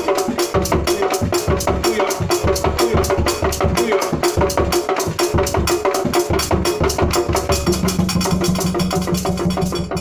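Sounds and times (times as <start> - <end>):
wooden hand drums and block: 0.0 - 10.0.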